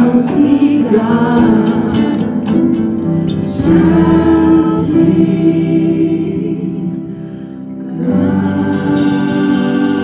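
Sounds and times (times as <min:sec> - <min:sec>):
group singing gospel in harmony: 0:00.0 - 0:10.0.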